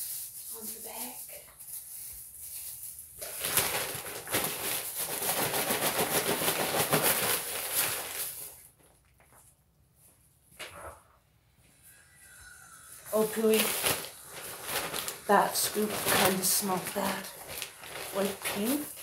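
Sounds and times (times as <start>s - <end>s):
plastic bag crinkling: 0.1s - 9.6s, 12.3s - 19.0s.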